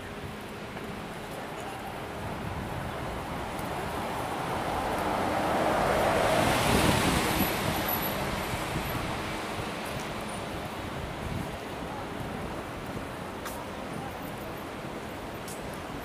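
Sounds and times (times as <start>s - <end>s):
bus passing close by: 1.8s - 11.5s.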